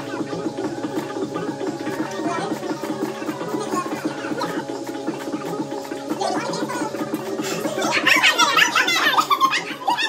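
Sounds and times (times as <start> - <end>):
background music with steady beat: 0.0 - 10.0
woman laughing loudly: 7.4 - 10.0.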